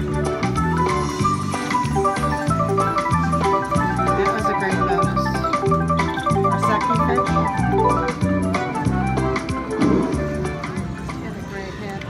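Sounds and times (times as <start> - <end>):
slot machine bonus music: 1.6 - 10.9.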